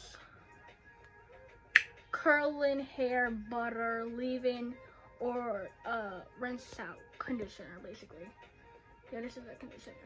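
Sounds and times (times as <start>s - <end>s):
sharp click: 1.7s - 2.0s.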